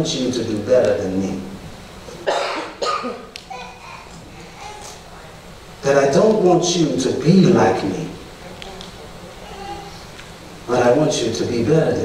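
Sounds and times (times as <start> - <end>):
person coughing: 2.2 - 3.3.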